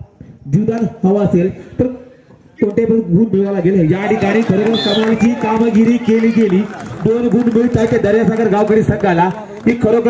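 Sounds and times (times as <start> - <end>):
man commentating: 2.9 - 10.0.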